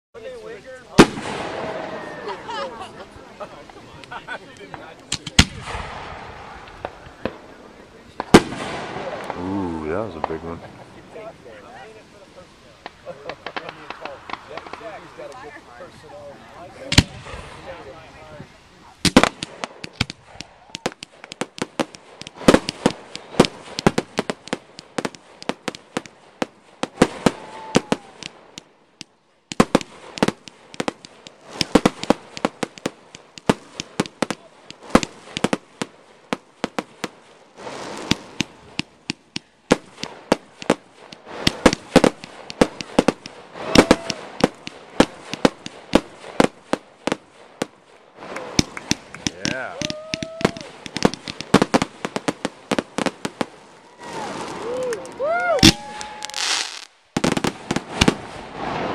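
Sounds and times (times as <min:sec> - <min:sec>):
fireworks bangs and crackles: 0:00.2 - 0:58.9.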